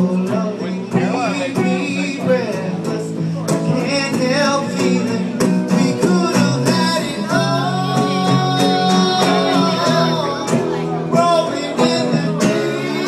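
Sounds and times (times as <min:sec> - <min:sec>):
strummed guitar: 0:00.0 - 0:13.0.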